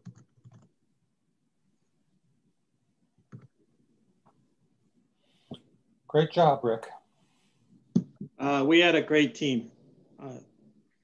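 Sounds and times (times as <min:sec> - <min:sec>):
computer keyboard typing: 0:00.0 - 0:00.7, 0:03.3 - 0:03.5.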